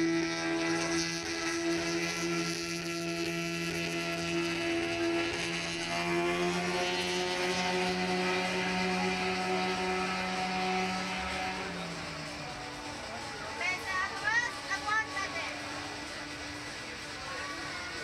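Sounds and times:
ride machinery motor hum: 0.0 - 18.0.

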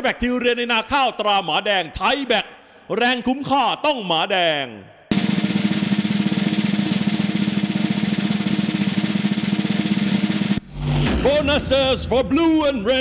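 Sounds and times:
snare drum roll: 5.1 - 11.7.

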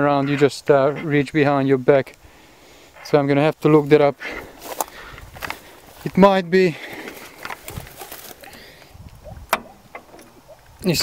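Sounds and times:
footsteps: 4.6 - 8.6.

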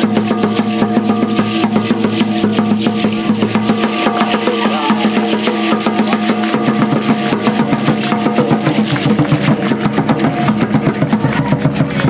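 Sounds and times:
fast beating on large drums: 0.0 - 12.0.

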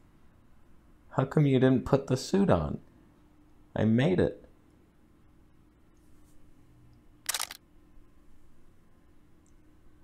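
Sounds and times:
faint room hum: 0.0 - 10.0
camera shutter clicking: 7.3 - 7.6.

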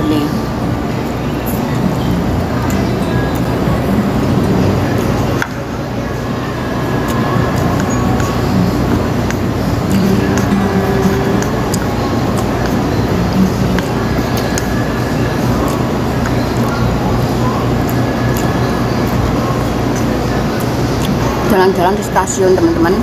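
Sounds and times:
indistinct voices: 0.0 - 23.0
music playing: 0.0 - 23.0.

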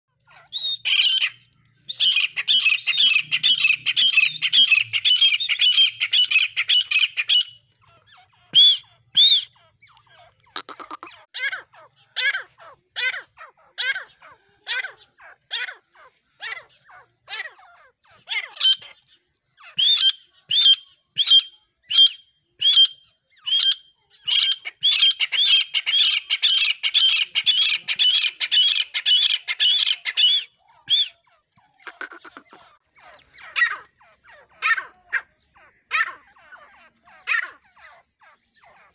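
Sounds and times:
birds squawking: 0.1 - 19.0, 23.6 - 38.9.

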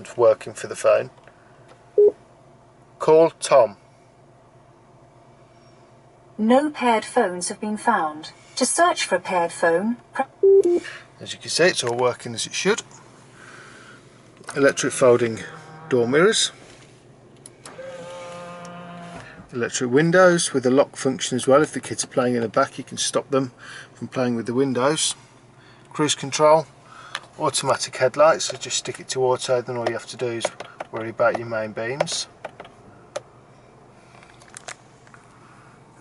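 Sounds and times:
short electronic beep: 10.4 - 10.8
mirror motor whine: 13.2 - 19.5.

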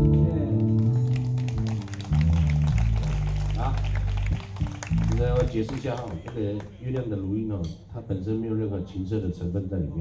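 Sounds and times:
live rock band: 0.0 - 5.5.

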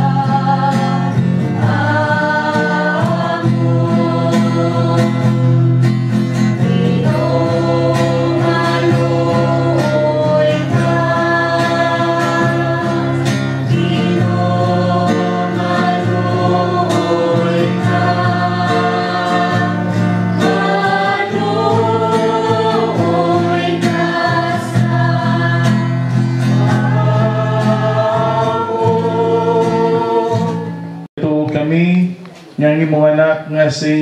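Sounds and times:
group singing a hymn: 0.0 - 31.1
strummed acoustic guitar: 0.0 - 31.1.

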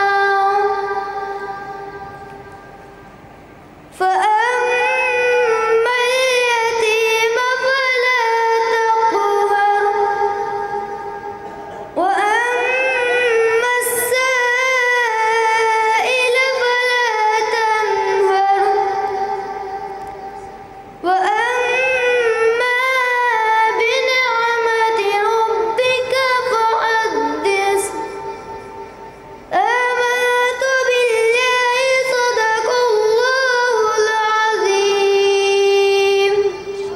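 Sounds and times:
boy chanting into microphone: 0.0 - 2.5, 3.9 - 36.9.

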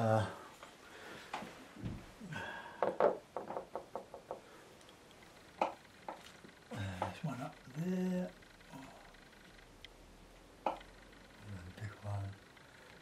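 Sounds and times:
man murmuring: 0.0 - 0.5, 6.7 - 9.0.

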